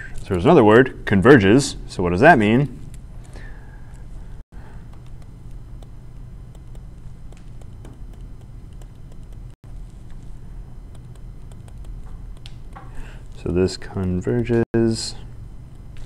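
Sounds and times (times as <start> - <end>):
steady low hum: 0.0 - 16.0
stylus tapping on tablet screen: 4.9 - 9.6, 10.9 - 13.0.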